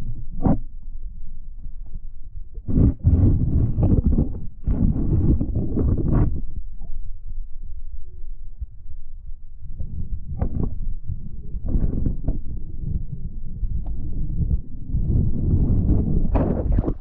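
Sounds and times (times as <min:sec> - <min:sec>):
muffled underwater sloshing: 0:02.4 - 0:07.3, 0:09.3 - 0:17.0.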